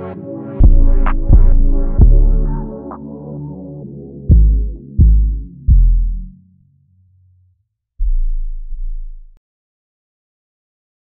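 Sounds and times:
deep bass note: 0:00.6 - 0:02.8, 0:04.3 - 0:06.5, 0:08.0 - 0:09.4.

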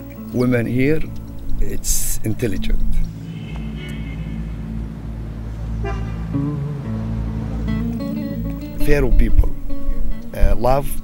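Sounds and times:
traffic hum: 0:00.0 - 0:11.0
car horns honking: 0:03.2 - 0:05.0, 0:05.6 - 0:06.6.

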